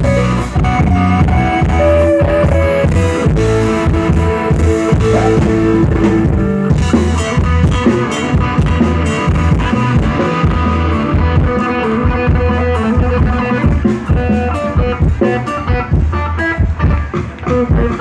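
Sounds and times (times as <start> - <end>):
rock band playing loudly: 0.0 - 18.0.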